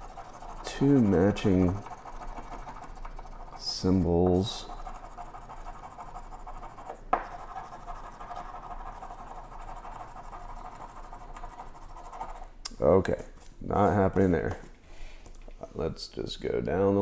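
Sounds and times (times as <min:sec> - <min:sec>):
coin scratching ticket: 0:00.0 - 0:12.5.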